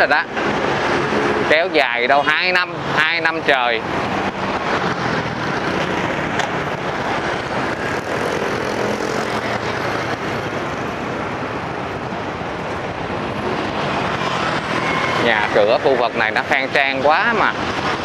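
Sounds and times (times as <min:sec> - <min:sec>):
motorbike engines humming: 0:00.0 - 0:18.0
bus passing close by: 0:03.7 - 0:16.0.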